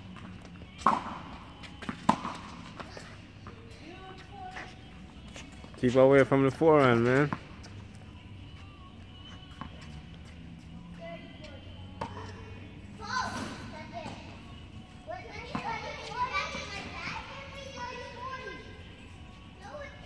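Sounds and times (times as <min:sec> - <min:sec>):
children calling out: 0:13.0 - 0:14.1.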